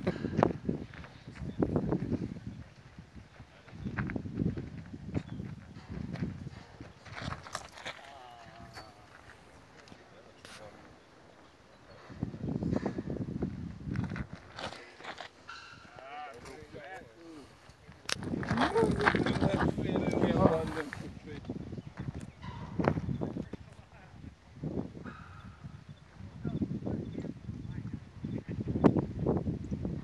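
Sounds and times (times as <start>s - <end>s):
people talking indistinctly: 8.0s - 13.0s, 14.0s - 24.3s.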